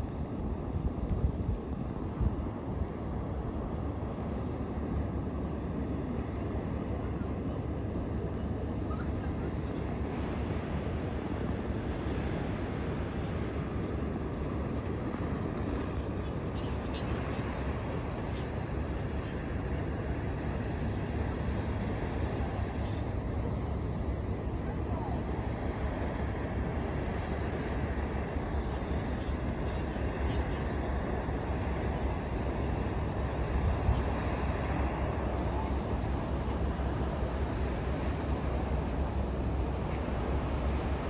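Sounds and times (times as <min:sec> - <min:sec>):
harbour background rumble: 0:00.0 - 0:41.0.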